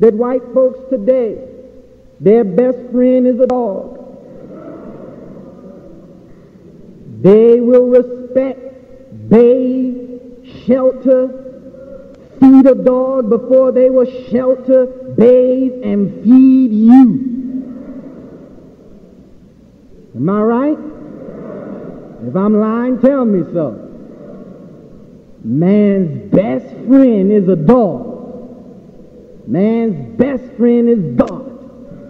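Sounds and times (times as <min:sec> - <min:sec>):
faint recording hiss: 0:00.0 - 0:32.0
faint steady background noise: 0:00.0 - 0:32.0
voice echo: 0:00.0 - 0:32.0.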